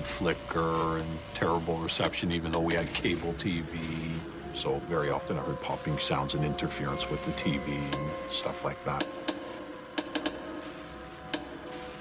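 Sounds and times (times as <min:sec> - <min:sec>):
television static hiss: 0:00.0 - 0:09.2.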